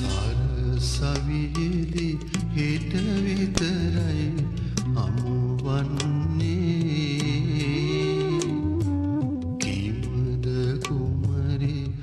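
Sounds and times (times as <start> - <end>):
man singing chant-like melody: 0.0 - 8.6.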